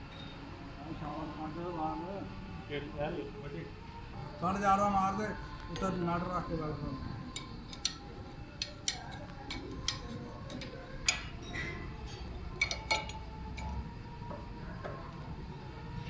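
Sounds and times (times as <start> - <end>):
spanner ticking on metal: 7.3 - 11.3, 12.6 - 13.7
metallic clicks of steel parts: 7.3 - 13.8.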